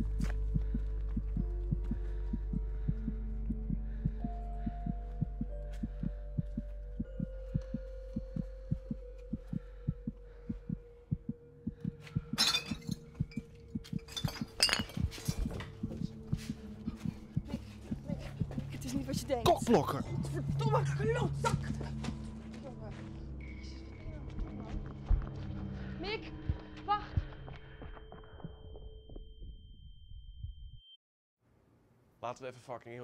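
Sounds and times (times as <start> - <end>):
low synth drone: 0.0 - 12.4.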